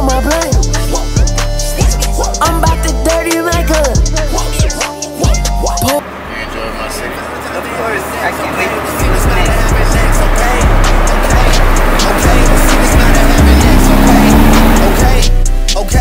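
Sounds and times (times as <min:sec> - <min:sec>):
hip-hop music with heavy bass: 0:00.0 - 0:16.0
car driving: 0:05.6 - 0:16.0
rising tone: 0:08.9 - 0:15.3.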